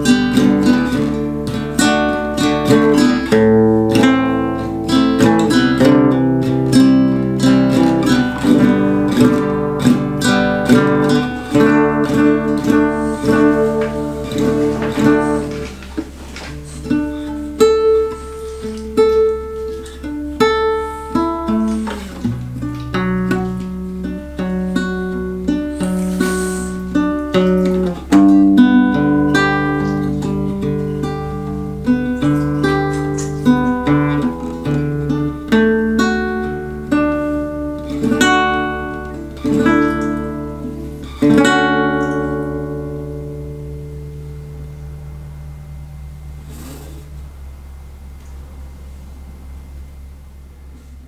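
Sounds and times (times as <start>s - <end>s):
classical guitar fingerstyle melody: 0.0s - 47.2s.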